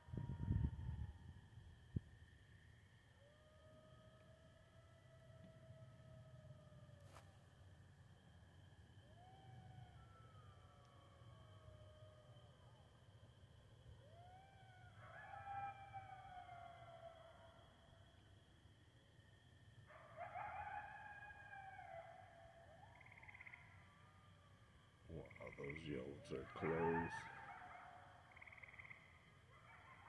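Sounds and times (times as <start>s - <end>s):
coyotes howling and yipping: 0.0s - 30.0s.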